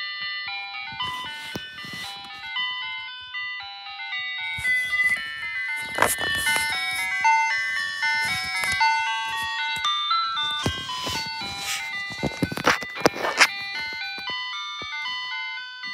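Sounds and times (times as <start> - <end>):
ice cream truck jingle: 0.0 - 15.9.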